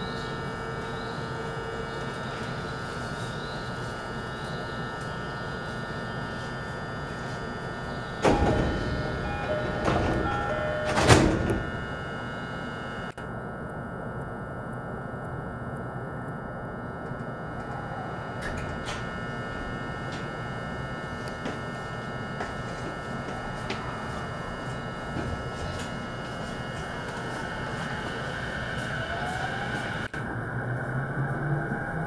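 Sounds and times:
train car humming: 0.0 - 15.1, 16.6 - 32.0
rush of sound from doors: 8.2 - 11.7
train doors closing thud: 8.2 - 11.8
short door chime: 8.2 - 11.9.

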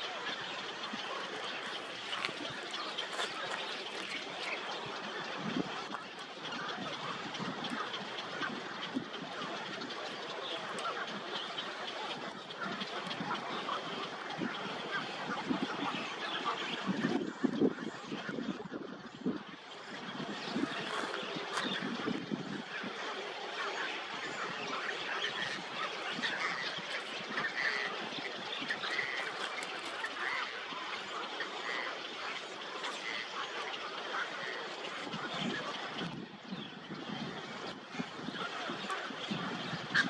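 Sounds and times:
birds chorus: 0.0 - 40.0.

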